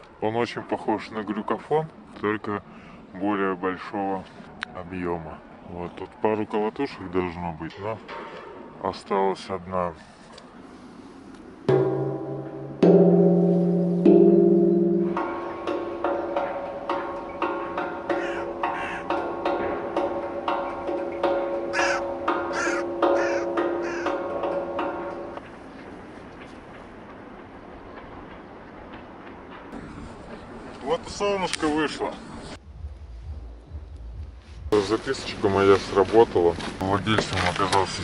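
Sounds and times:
steel tongue drum notes: 11.7 - 25.6.

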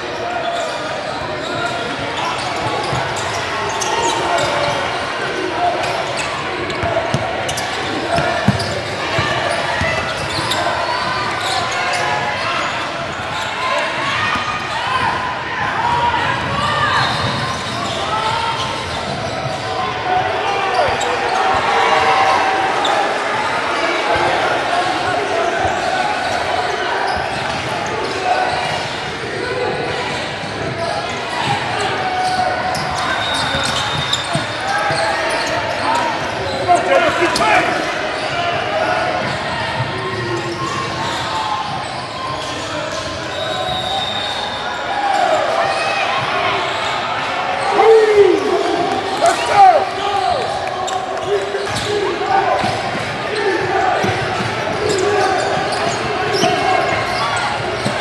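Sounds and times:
crowd chatter: 0.0 - 58.0
spectators shouting: 44.0 - 58.0.

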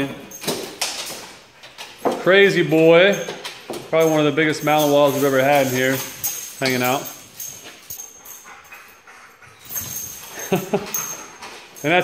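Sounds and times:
dogs playing: 0.0 - 12.0.

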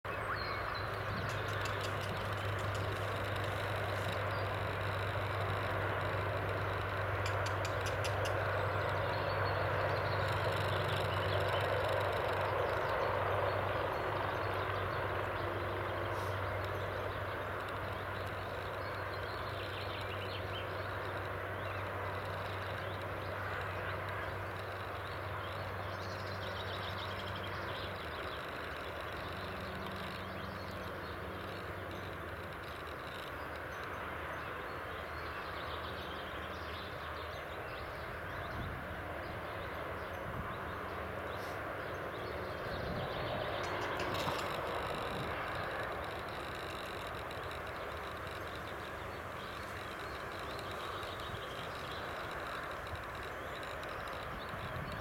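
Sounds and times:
outdoor low hum: 0.0 - 55.0
faint high ticks: 0.8 - 36.2, 43.4 - 55.0.

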